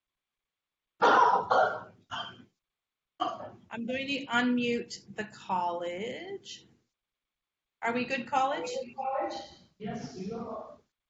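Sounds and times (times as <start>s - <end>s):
person coughing: 1.0s - 2.3s.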